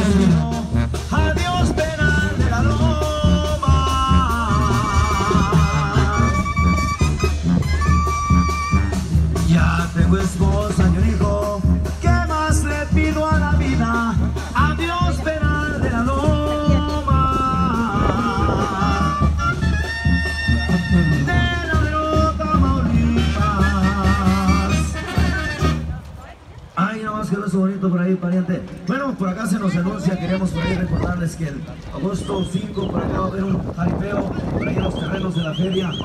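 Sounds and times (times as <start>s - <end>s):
live band playing: 0.0s - 26.5s
wavering reed instrument melody: 4.3s - 9.1s.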